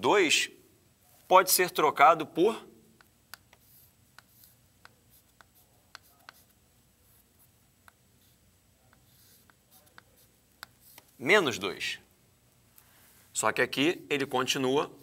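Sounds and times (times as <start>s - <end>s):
chalk ticking and scraping on chalkboard: 3.0s - 11.2s.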